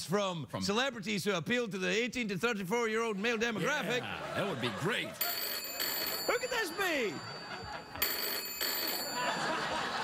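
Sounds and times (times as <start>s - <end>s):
telephone bell ringing: 5.2s - 10.0s.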